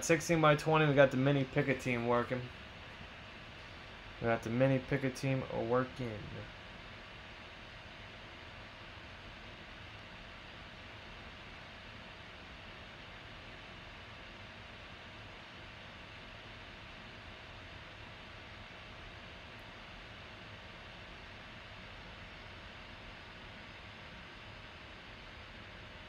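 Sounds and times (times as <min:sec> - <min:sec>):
thin constant hum: 0:00.0 - 0:26.0.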